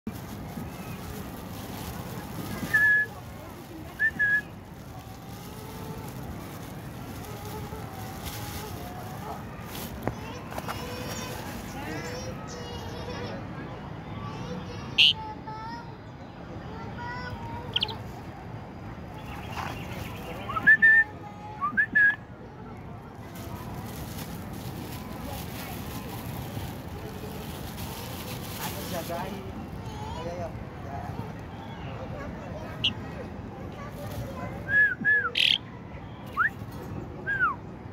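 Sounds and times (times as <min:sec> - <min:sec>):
low background noise: 0:00.1 - 0:37.9.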